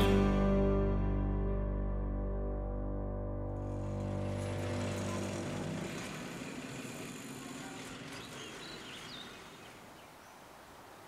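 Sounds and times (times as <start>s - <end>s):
background music: 0.0s - 5.6s
road traffic noise: 3.5s - 10.2s.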